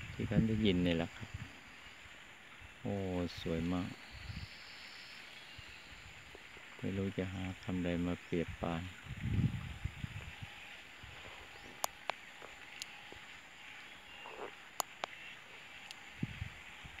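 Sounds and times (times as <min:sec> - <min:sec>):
low rumble on microphone: 0:00.0 - 0:01.7, 0:05.6 - 0:11.8, 0:16.1 - 0:17.0
faint birdsong: 0:00.0 - 0:17.0
sharp clicks: 0:11.6 - 0:13.3, 0:14.3 - 0:16.0.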